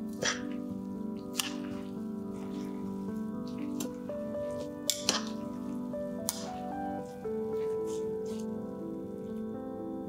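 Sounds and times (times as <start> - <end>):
melodic background music: 0.0 - 10.0.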